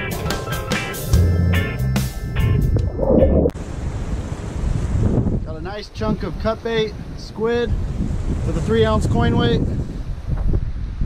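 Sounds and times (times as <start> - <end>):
background music with beat: 0.0 - 3.0
wind on microphone: 2.4 - 11.0.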